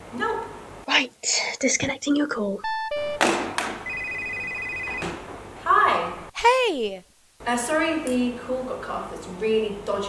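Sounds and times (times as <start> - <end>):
telephone ringing: 2.6 - 3.2, 3.8 - 5.2.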